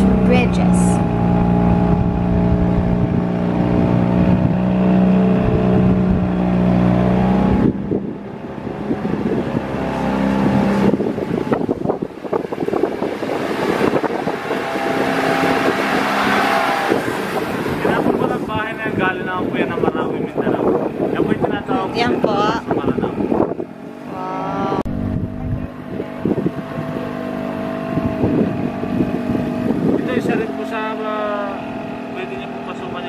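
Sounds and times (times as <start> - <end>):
boat motor humming: 0.0 - 33.0
wind on microphone: 0.0 - 33.0.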